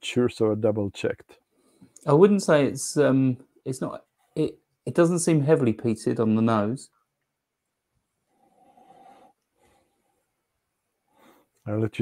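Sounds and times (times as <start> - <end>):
faint nasal sniffing: 8.3 - 10.2.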